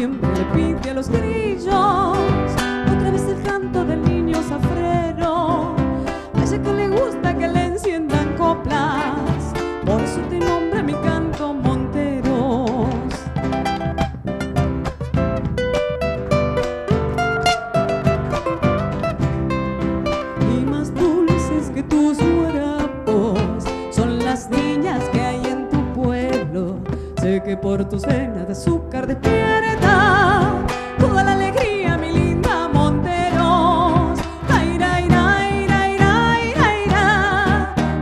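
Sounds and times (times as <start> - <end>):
woman singing: 0.0 - 13.6, 20.0 - 38.0
guitars: 0.0 - 38.0
bass drum: 0.2 - 38.0.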